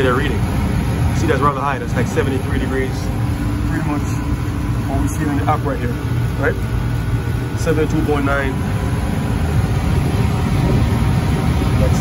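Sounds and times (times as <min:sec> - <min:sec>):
air conditioning unit humming: 0:00.0 - 0:12.0.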